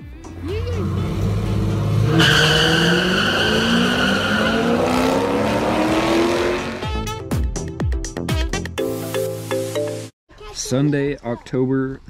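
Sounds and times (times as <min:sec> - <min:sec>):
car engine revving through gears: 0:00.2 - 0:06.9
high tyre squeal: 0:00.8 - 0:06.8.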